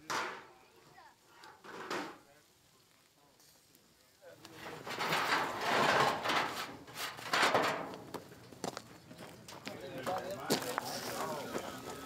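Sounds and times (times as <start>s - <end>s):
metal shovel scraping coals: 4.4s - 8.6s, 10.7s - 12.0s.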